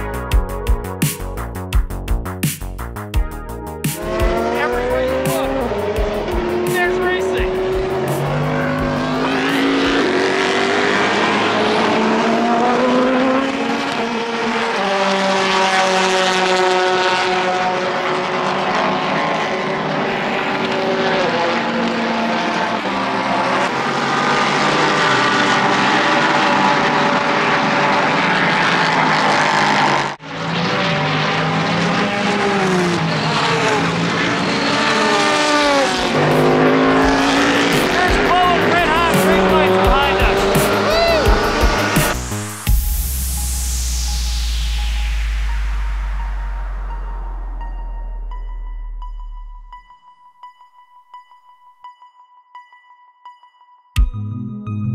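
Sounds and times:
race cars passing: 3.9s - 42.6s.

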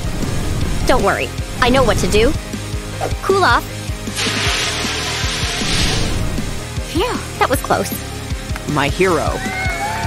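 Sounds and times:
fire extinguisher spraying hiss: 4.2s - 6.5s.

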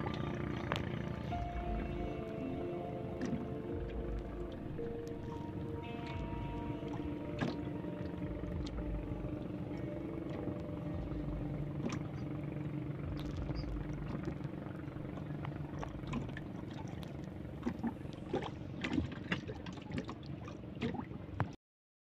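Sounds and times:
boat engine droning: 0.0s - 21.6s
water lapping against hull: 0.0s - 21.6s.

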